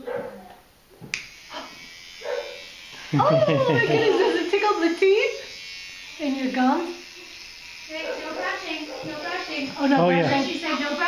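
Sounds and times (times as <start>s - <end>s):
electric toothbrush motor buzzing: 1.1s - 11.0s.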